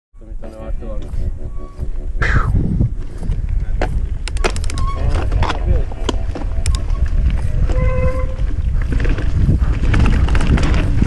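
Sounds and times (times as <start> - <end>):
steady low rumble: 0.2 - 11.0.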